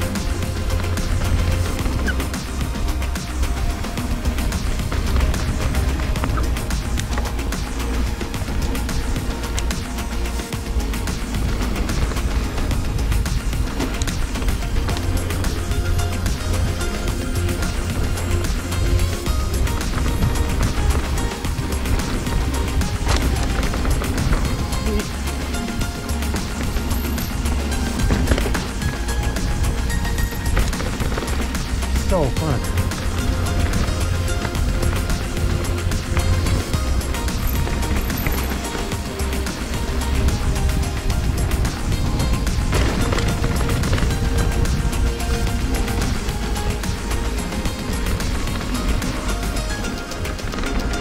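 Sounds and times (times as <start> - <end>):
background music with repeating beat: 0.0 - 51.0
bike tyres on dirt trail: 0.0 - 51.0
wind: 0.0 - 51.0.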